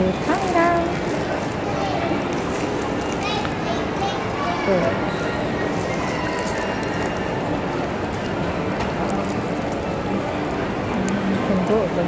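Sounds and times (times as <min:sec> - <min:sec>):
constant hum: 0:00.0 - 0:12.0.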